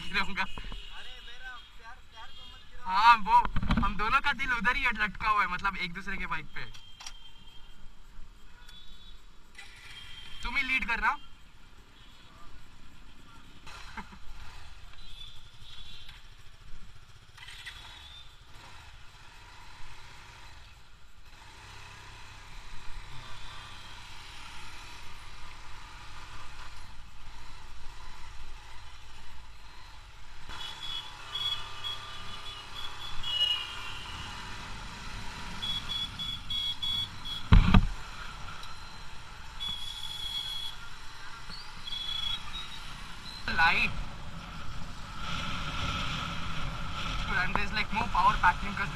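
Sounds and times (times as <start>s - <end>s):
motorcycle engine hum: 12.0s - 48.9s
short high-pitched beeps: 35.6s - 37.5s
loud thump: 37.5s - 38.0s.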